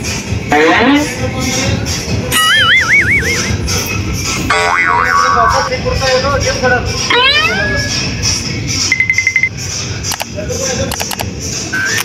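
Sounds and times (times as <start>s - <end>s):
background music: 0.0s - 12.0s
cartoon boing: 0.5s - 1.1s, 4.5s - 5.6s, 7.1s - 7.8s.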